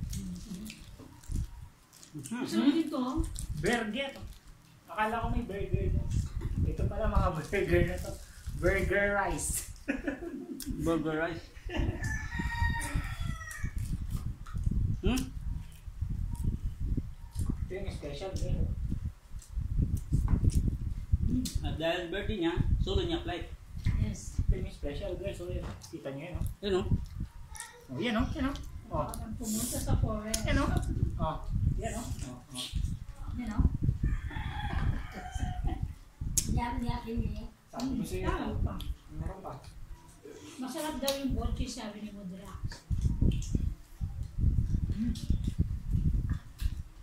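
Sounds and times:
rooster crowing: 11.8 - 13.8, 34.0 - 35.9.

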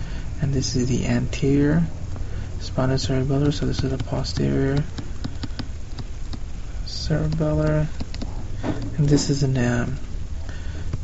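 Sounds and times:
steady low hum: 0.0 - 11.0
stylus tapping on tablet screen: 3.4 - 6.4.

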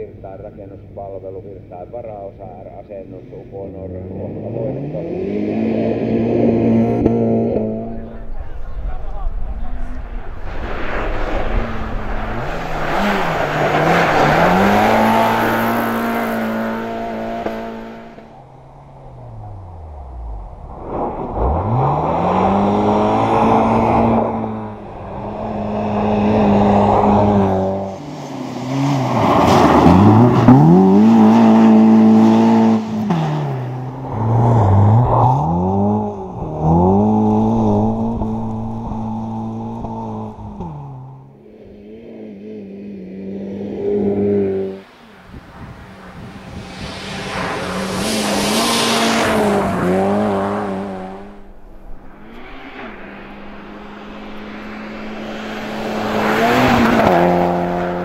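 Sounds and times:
rally car engine revving: 0.0 - 58.0
car passing with tyre and wind noise: 4.3 - 58.0.

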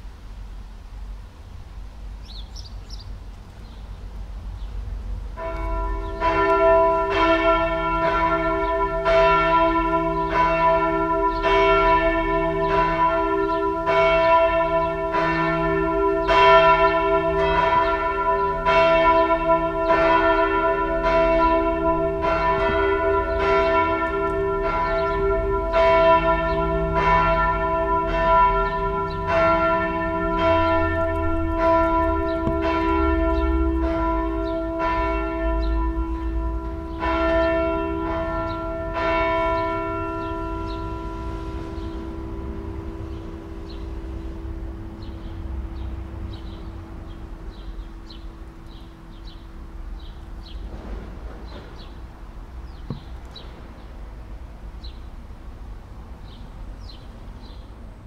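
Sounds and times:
swinging church bells ringing: 5.3 - 54.9.

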